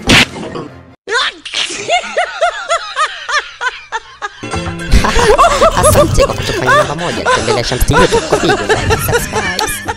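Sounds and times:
high-pitched laughter: 0:01.4 - 0:09.9.

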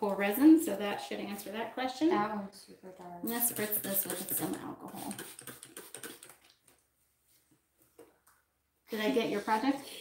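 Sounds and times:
spray bottle spritzing: 0:03.4 - 0:06.6.

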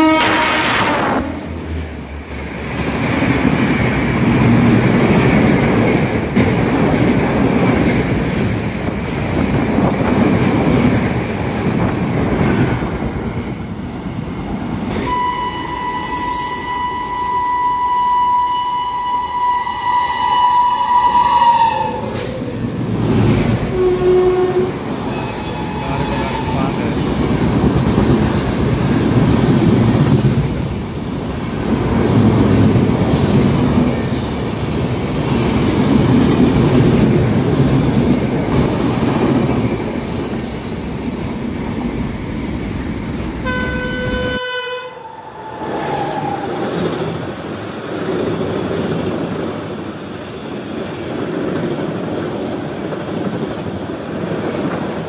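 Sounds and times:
train horn: 0:00.0 - 0:01.5, 0:14.9 - 0:22.3, 0:23.7 - 0:26.8, 0:43.4 - 0:46.2
train rumble and wheel clatter: 0:00.0 - 0:55.0.

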